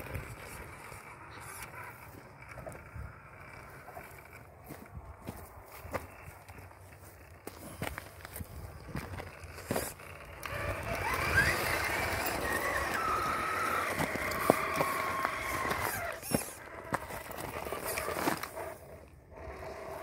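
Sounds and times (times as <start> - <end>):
electric motor and gearbox whining: 0.0 - 20.0
gravel crunching under tyres: 0.0 - 20.0.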